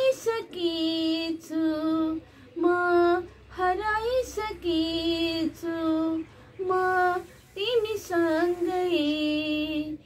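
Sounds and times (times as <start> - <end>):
woman singing solo: 0.0 - 10.0.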